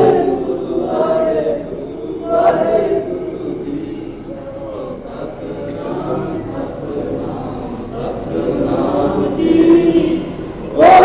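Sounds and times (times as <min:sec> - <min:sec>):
group chanting and singing: 0:00.0 - 0:11.0.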